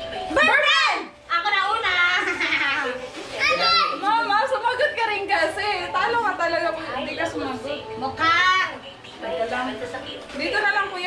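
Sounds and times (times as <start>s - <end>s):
children talking: 2.0s - 5.0s.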